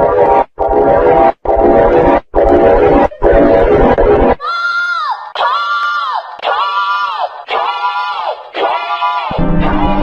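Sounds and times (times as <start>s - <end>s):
loud harsh distorted blare: 9.3s - 10.0s.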